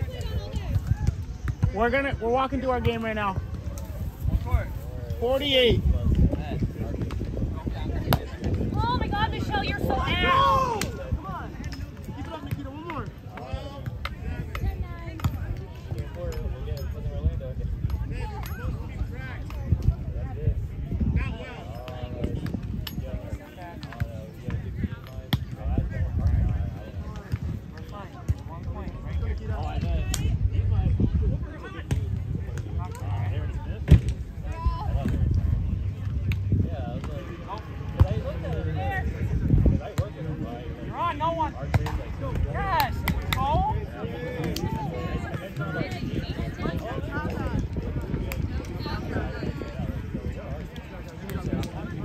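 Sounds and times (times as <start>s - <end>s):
people talking and calling out: 0.0s - 52.0s.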